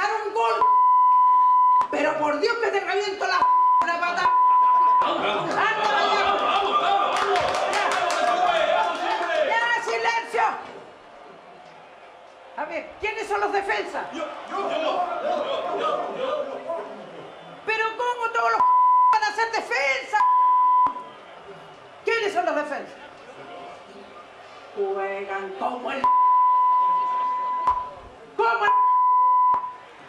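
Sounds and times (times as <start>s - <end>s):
pure-tone censor bleep: 0.6s - 1.9s, 3.4s - 5.1s, 18.6s - 19.2s, 20.2s - 21.1s, 26.0s - 28.0s, 28.7s - 29.8s
crowd chatter: 4.0s - 18.7s, 19.3s - 30.0s.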